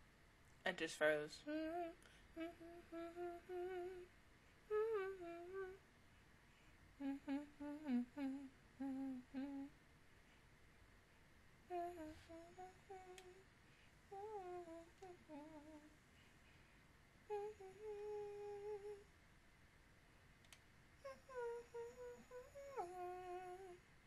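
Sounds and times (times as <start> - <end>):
woman humming a tune: 1.4 - 4.1, 4.7 - 5.8, 7.0 - 9.8, 11.7 - 13.4, 14.1 - 16.0, 17.3 - 19.1, 21.0 - 23.9.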